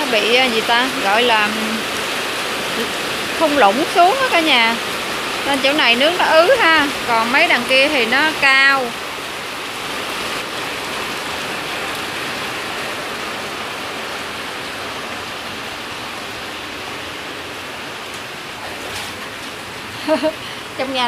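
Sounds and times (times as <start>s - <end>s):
heavy rain on wet pavement: 0.0s - 21.0s.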